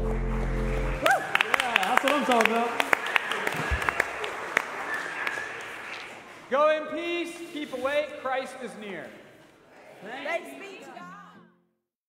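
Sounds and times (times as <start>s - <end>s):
congregation applauding: 0.0s - 6.5s.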